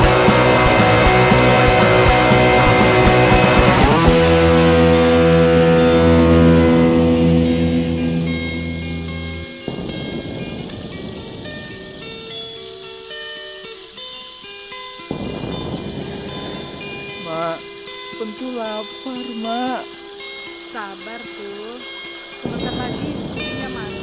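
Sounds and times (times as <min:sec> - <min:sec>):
electric guitar and band chord: 0:00.0 - 0:24.0
sparse held guitar notes: 0:00.0 - 0:24.0.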